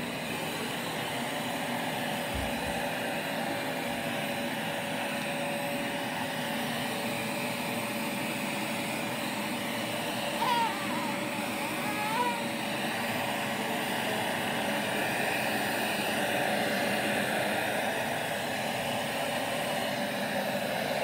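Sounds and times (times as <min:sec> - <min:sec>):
vacuum cleaner running: 0:00.0 - 0:21.0.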